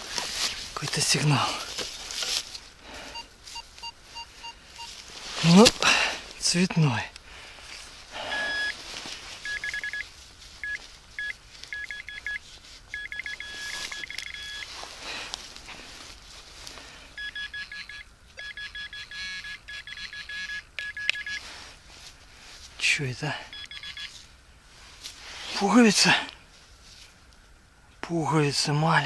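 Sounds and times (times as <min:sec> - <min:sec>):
metal detector probe beeping: 0:03.1 - 0:05.0, 0:08.3 - 0:08.8, 0:09.4 - 0:10.0, 0:10.6 - 0:14.7, 0:17.2 - 0:21.4, 0:23.5 - 0:24.2.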